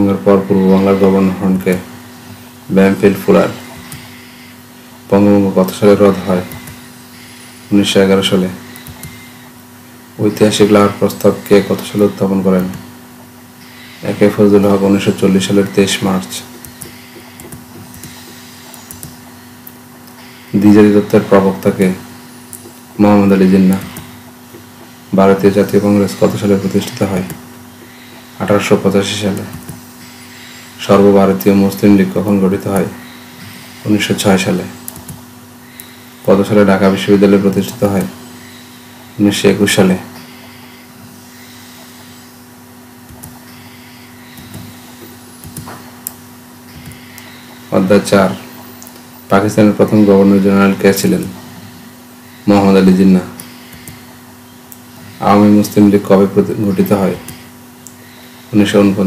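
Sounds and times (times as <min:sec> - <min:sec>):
background hiss: 0:00.0 - 0:59.0
low electrical hum: 0:00.0 - 0:59.0.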